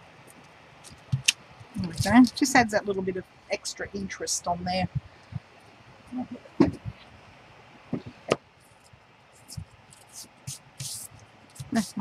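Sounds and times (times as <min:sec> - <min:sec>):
sponge scratching paper edges: 0:09.4 - 0:12.0.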